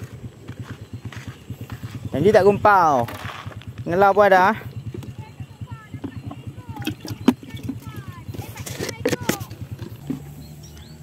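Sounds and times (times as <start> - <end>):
birds whistling: 0.0 - 11.0
motorcycle engine pulsing: 0.0 - 11.0.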